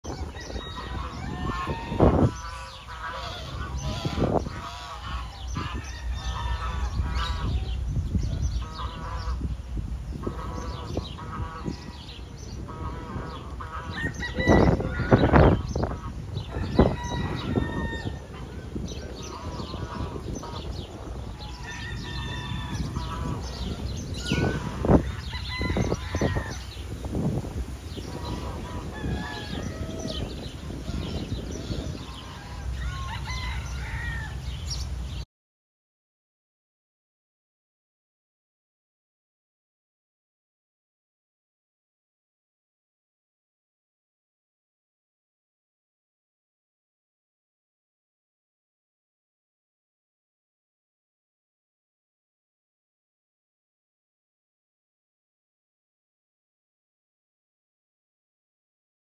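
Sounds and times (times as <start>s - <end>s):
geese honking: 0.1s - 34.4s.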